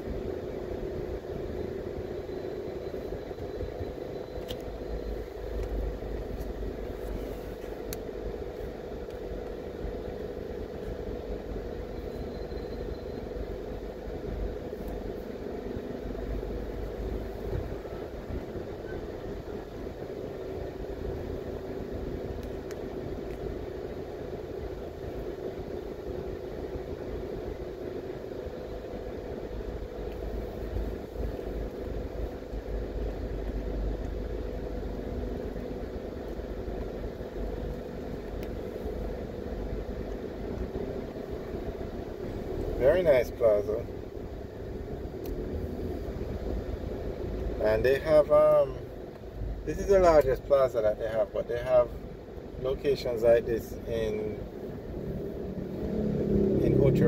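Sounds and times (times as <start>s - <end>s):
car engine and tyres rumbling: 0.0s - 57.0s.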